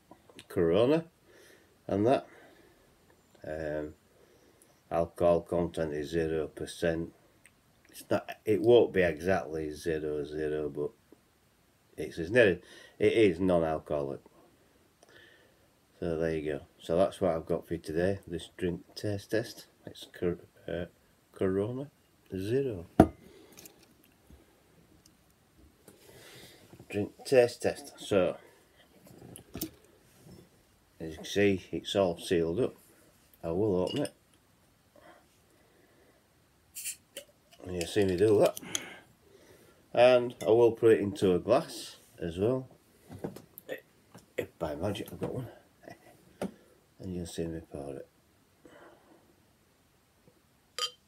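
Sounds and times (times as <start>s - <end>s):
glass bottle clinking on glass: 33.8s - 34.2s, 50.8s - 51.0s.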